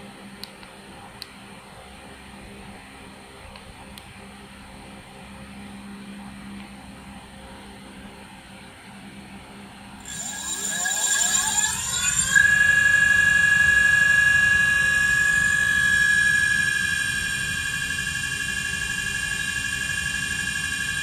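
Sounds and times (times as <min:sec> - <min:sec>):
electric motor whine: 0:10.0 - 0:21.0.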